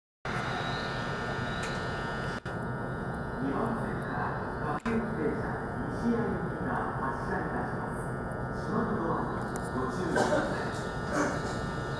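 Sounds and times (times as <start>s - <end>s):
electric train interior noise: 0.3s - 11.9s
high whining tones: 0.3s - 11.9s
voices: 3.4s - 11.8s.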